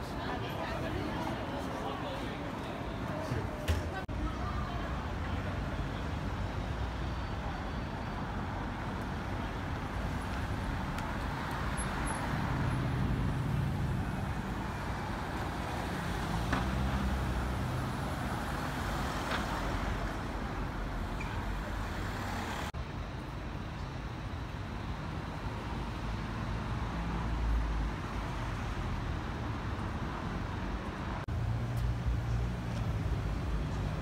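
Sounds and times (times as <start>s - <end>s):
cars passing: 0.0s - 23.1s, 24.8s - 34.0s
bus passing: 0.0s - 34.0s.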